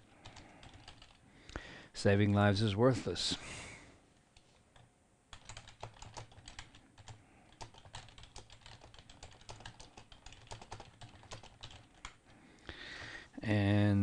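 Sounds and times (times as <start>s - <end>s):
computer keyboard typing: 0.0s - 1.2s, 4.7s - 12.3s.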